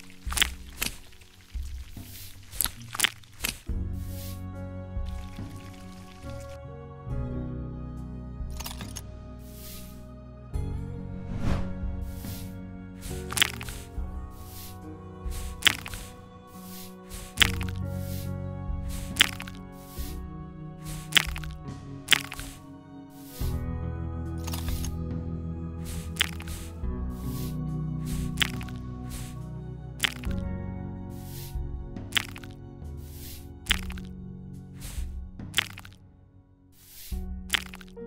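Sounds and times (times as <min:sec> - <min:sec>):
sharp crack-like pops: 0:00.0 - 0:03.8, 0:13.0 - 0:18.2, 0:18.9 - 0:20.2, 0:20.8 - 0:22.7, 0:28.1 - 0:29.4, 0:30.0 - 0:30.4, 0:32.1 - 0:32.6, 0:33.2 - 0:34.1, 0:34.8 - 0:36.0, 0:36.9 - 0:38.0
soft background music: 0:00.0 - 0:38.0
short swish: 0:11.2 - 0:18.3
short hiss: 0:36.8 - 0:37.8.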